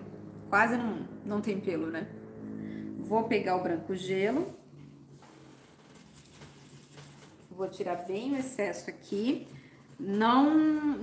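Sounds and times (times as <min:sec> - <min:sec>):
faint low hum: 0:00.0 - 0:08.1.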